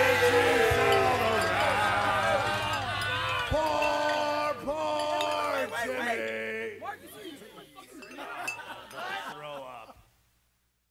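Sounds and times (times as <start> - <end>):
people talking and laughing: 0.0 - 10.1
high clink: 0.6 - 6.5, 7.1 - 9.4.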